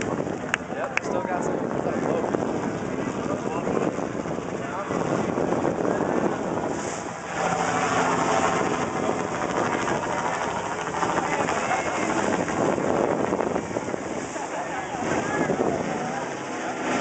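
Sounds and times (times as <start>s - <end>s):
boat engine running: 0.0s - 17.0s
water rushing: 0.0s - 17.0s
wind rushing: 1.1s - 17.0s.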